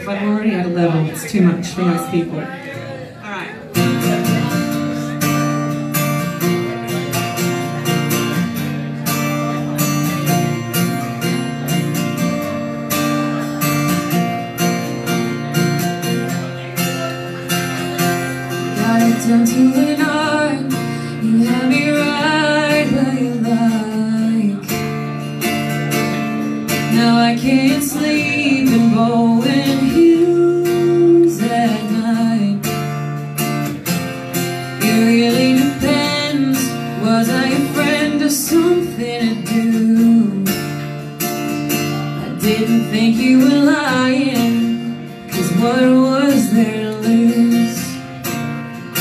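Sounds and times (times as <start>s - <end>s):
acoustic guitar strumming: 0.0s - 49.0s
woman singing: 18.5s - 25.0s, 26.7s - 33.2s, 34.7s - 41.1s, 42.1s - 48.3s.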